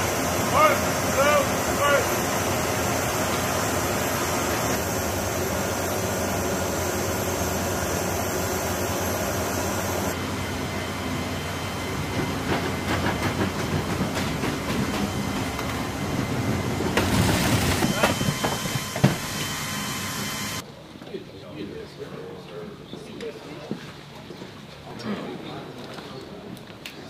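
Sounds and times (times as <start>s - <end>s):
cargo pallet rolling over rollers: 12.6s - 19.5s.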